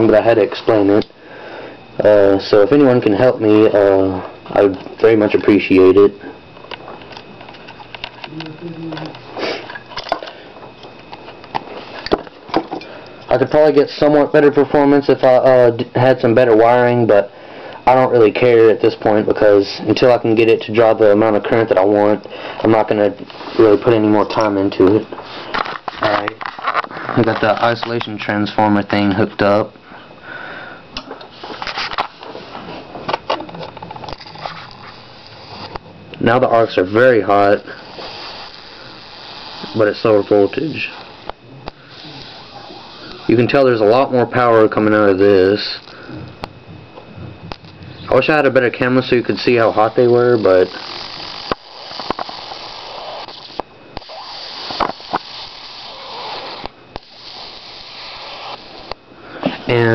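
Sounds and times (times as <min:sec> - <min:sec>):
electric arc crackling and hissing: 0:00.0 - 0:01.2, 0:01.8 - 0:29.8, 0:30.8 - 0:59.9
sharp electric clicks: 0:00.0 - 0:01.2, 0:02.4 - 0:16.9, 0:17.7 - 0:29.7, 0:33.0 - 0:59.1
sharp electric snaps: 0:00.0 - 0:01.2, 0:02.5 - 0:15.2, 0:17.7 - 0:29.6, 0:30.9 - 0:59.1.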